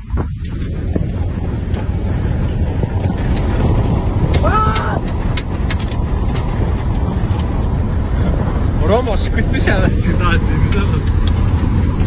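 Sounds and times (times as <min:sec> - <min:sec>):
engine and road rumble in car: 0:00.0 - 0:12.0.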